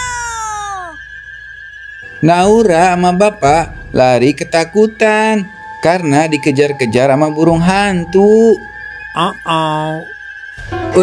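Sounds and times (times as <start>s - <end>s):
high pitch-shifted voice crying: 0.0s - 1.0s
faint steady background tone: 0.0s - 11.0s.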